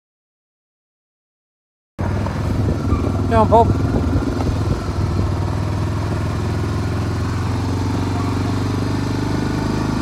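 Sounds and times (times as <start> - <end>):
quad bike engine running: 2.0 - 10.0.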